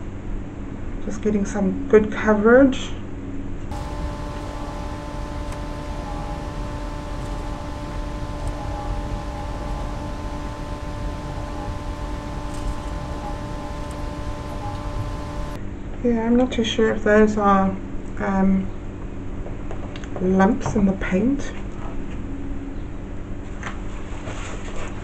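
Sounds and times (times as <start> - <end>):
steady machine hum with hiss: 3.7 - 15.6.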